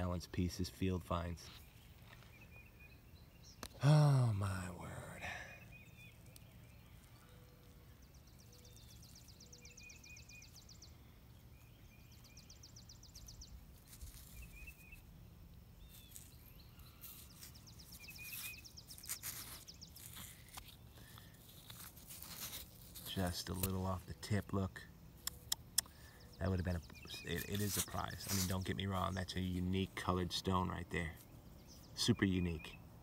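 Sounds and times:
crunching and scraping of sandy soil: 0.0s - 32.8s
faint birdsong: 0.0s - 33.0s.

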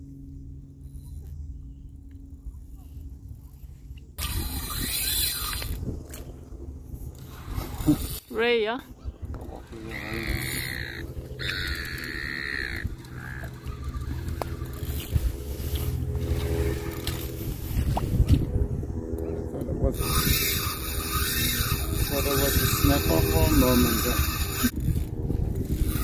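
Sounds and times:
wind rumble on microphone: 0.0s - 26.0s
fishing reel drag buzzing: 4.2s - 18.0s, 19.9s - 26.0s.

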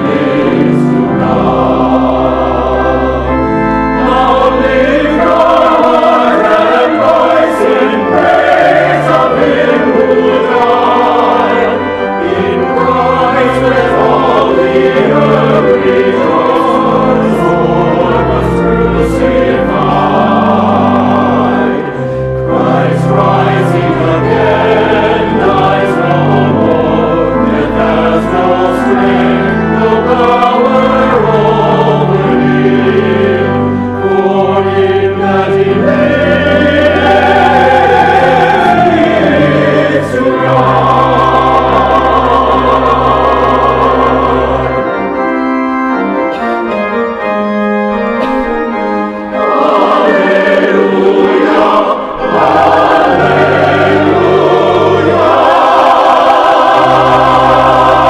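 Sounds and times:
choir singing a hymn: 0.0s - 58.0s
low organ notes: 0.0s - 58.0s.

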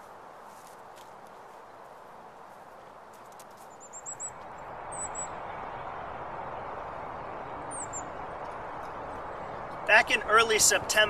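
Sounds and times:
outdoor background noise: 0.0s - 11.0s
small birds chirping: 3.0s - 5.8s, 6.4s - 10.0s.

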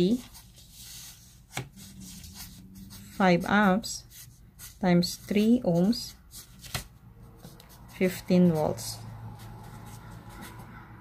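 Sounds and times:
marker writing on paper: 2.1s - 6.2s.

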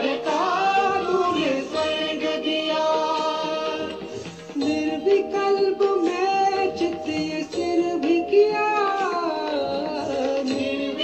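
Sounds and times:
devotional song with high voice: 0.0s - 11.0s
instrumental backing: 0.0s - 11.0s.

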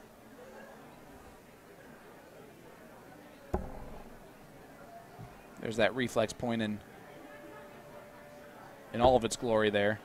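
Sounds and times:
low murmur of voices: 0.0s - 10.0s
dart striking dartboard: 3.6s - 4.3s.

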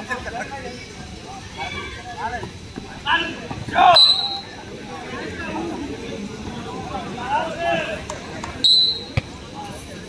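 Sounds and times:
referee whistle blast: 3.9s - 4.5s, 8.6s - 9.2s.

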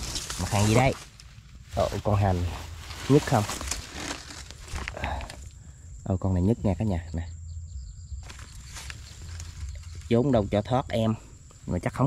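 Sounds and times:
low rumble on microphone: 0.0s - 12.0s
wire trap rustles and clicks: 2.8s - 5.4s, 8.2s - 10.3s.

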